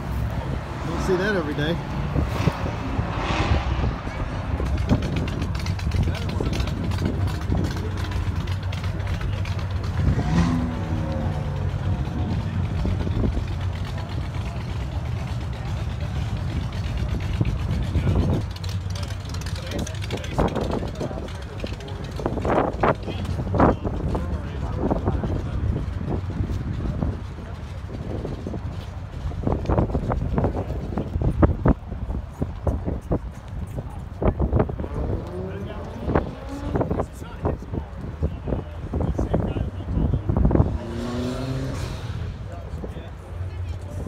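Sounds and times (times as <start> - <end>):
car engines rumbling past: 0.0 - 44.0
crowd chatter: 0.0 - 44.0.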